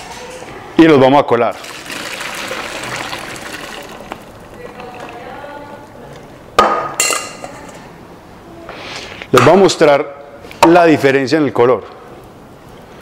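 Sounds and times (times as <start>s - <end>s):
water pouring through strainer: 1.5s - 5.4s.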